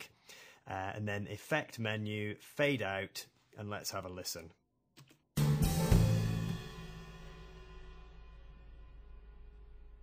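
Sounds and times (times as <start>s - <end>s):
live band final notes: 5.4s - 8.0s
cymbal hit ringing: 5.9s - 9.7s.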